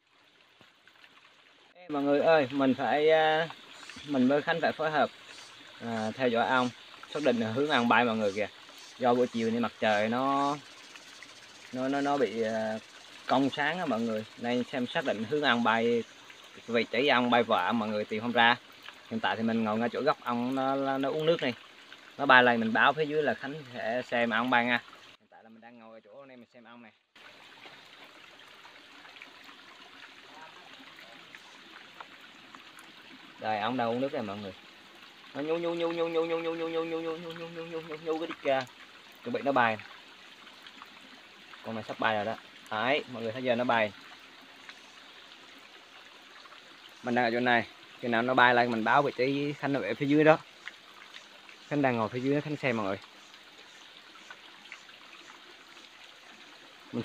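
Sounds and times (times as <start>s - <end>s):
small splashes and drips: 0.0s - 25.3s, 26.2s - 57.0s
stream trickling over rocks: 0.0s - 57.0s.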